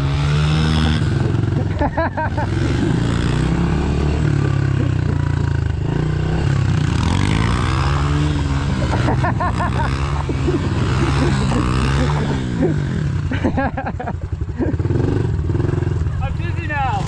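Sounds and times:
pit bike engine revving: 0:00.0 - 0:17.0
pit bike engine running: 0:00.0 - 0:17.0.

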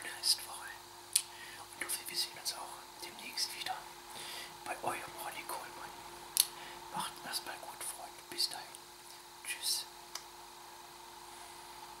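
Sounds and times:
person whispering: 0:00.0 - 0:03.9, 0:04.6 - 0:08.8, 0:09.4 - 0:09.9
faint constant hum: 0:00.0 - 0:12.0
room hiss: 0:00.0 - 0:12.0.

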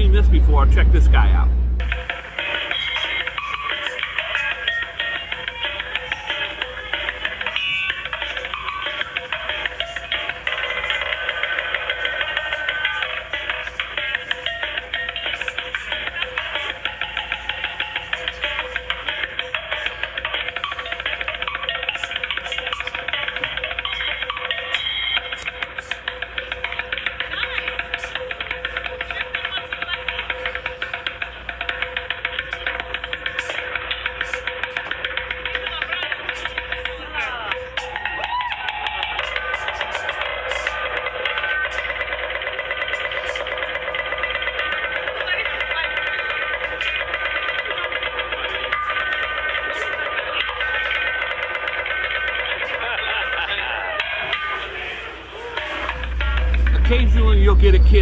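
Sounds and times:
cymbal ringing: 0:55.4 - 0:58.0.

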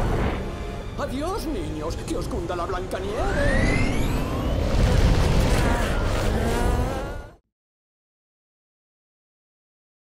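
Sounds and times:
avalanche rumble: 0:02.8 - 0:07.3
rising whine: 0:02.9 - 0:07.4.

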